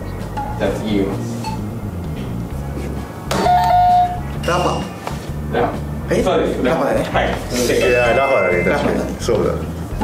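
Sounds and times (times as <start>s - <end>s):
background music: 0.0s - 10.0s
quiz buzzer chime: 3.4s - 4.9s, 7.8s - 9.2s.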